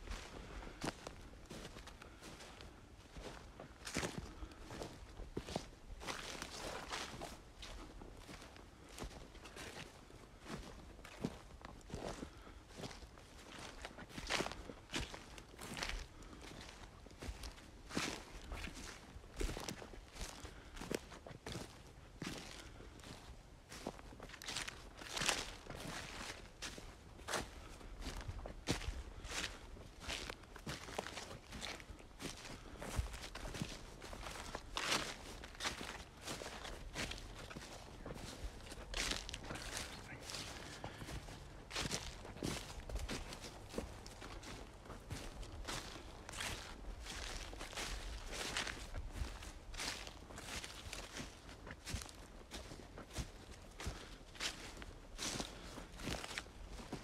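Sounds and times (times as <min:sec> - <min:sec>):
footsteps on dry grass and leaves: 0:00.0 - 0:57.0.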